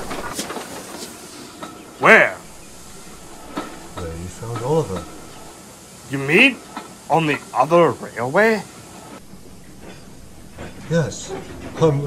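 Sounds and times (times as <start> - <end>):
train rushing past: 0.0 - 12.0
rail-joint clicks: 3.1 - 5.5.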